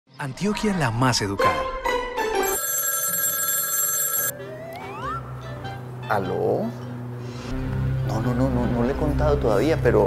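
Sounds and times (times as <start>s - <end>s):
mobile phone ringtone: 2.4s - 4.5s.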